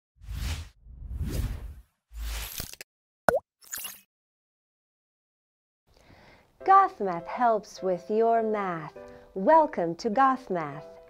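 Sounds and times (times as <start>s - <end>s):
whooshes: 0.2s - 2.5s.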